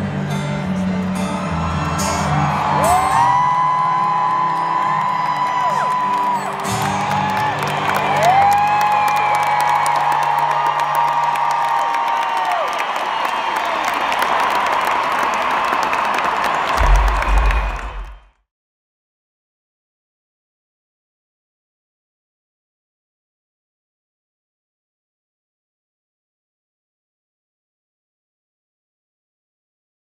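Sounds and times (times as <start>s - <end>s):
live concert music: 0.0s - 12.7s, 13.6s - 18.3s
crowd cheering and whooping: 1.0s - 18.3s
low rumble: 16.8s - 18.2s.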